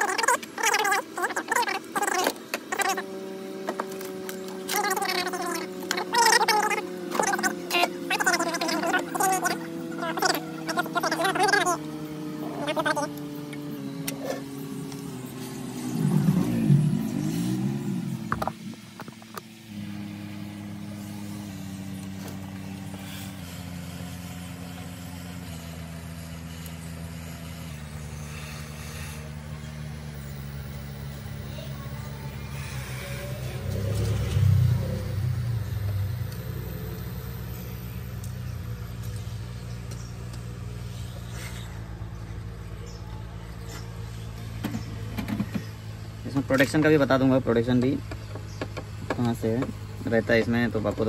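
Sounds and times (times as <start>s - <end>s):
hot-air gun blower whine: 0.0s - 51.0s.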